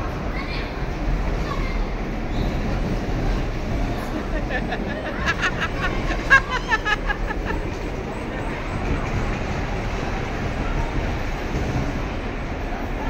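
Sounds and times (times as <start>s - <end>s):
bumper car rumbling: 0.0s - 13.0s.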